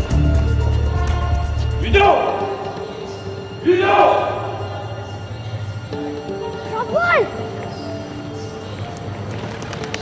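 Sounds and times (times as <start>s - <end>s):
film score with sustained notes: 0.0s - 10.0s.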